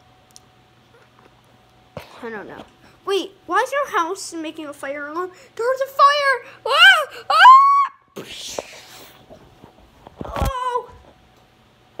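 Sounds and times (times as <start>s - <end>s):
high meow-like cry: 6.7s - 8.0s.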